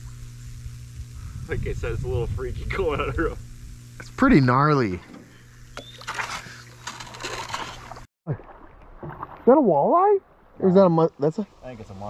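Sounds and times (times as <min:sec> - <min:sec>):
power lines buzzing: 0:00.0 - 0:08.1
water splashing around canoe: 0:05.8 - 0:10.6.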